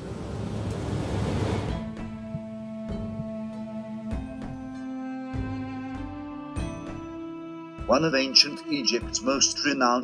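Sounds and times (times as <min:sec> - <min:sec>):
film score held notes: 0:00.0 - 0:10.0.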